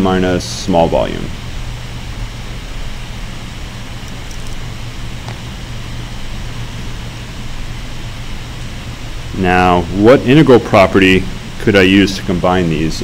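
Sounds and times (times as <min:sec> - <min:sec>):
background hiss: 0:00.0 - 0:13.0
low hum: 0:00.6 - 0:12.0.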